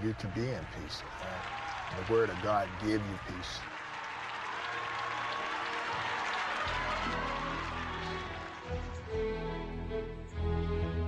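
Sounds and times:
congregation applauding: 0.0 - 9.2.

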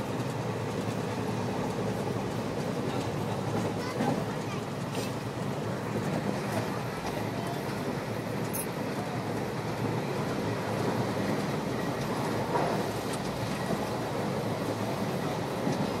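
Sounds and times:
train carriage rumbling on rails: 0.0 - 16.0.

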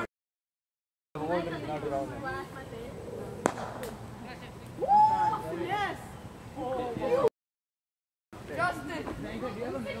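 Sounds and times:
cricket bat striking ball: 3.4 - 4.0.

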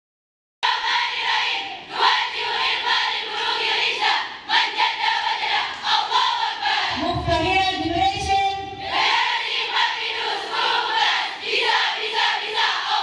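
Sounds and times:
girls chanting a cheer: 0.6 - 7.0, 8.8 - 13.0.

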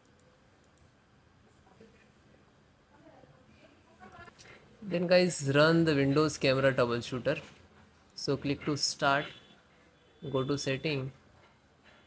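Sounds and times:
computer mouse clicks: 0.0 - 1.0.

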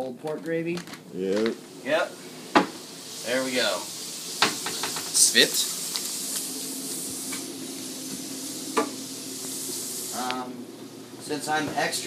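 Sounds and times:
food sizzling in frying pan: 1.0 - 12.0.

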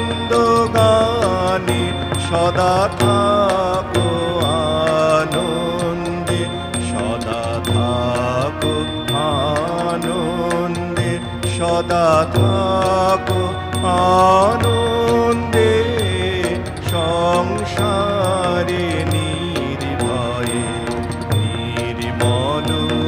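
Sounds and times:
man singing slowly: 0.0 - 23.0
small hand cymbals ticking: 0.0 - 23.0.

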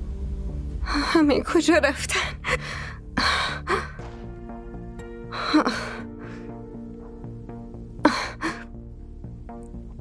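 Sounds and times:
soft musical score: 0.0 - 10.0.

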